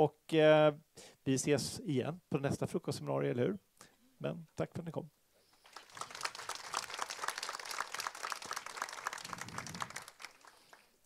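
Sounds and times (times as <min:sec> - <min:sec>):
audience applauding: 0:05.6 - 0:11.0.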